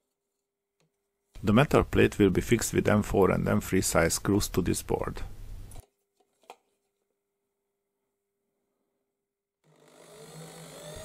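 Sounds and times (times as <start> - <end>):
electric drill whining: 9.7 - 11.0.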